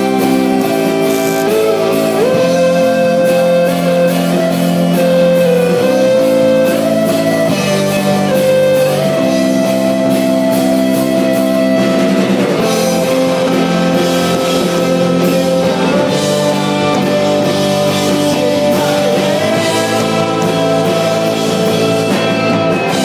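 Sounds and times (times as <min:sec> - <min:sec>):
drums and cymbals: 0:00.0 - 0:23.0
ringing guitar chords: 0:00.0 - 0:23.0.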